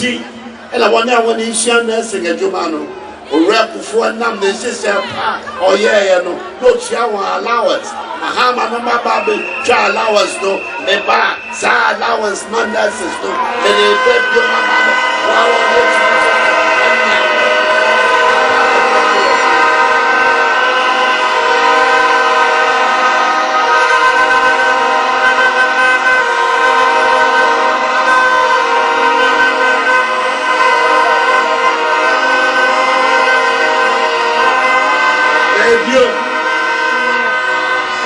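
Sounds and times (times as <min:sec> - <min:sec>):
drone of horn-like tones: 0:05.7 - 0:38.0.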